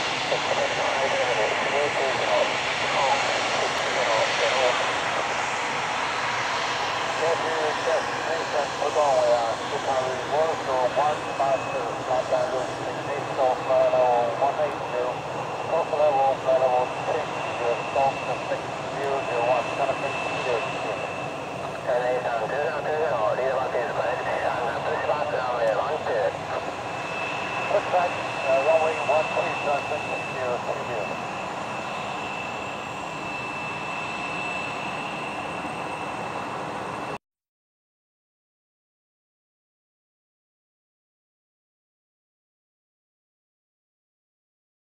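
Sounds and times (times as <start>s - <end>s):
jet engines whining: 0.0s - 37.2s.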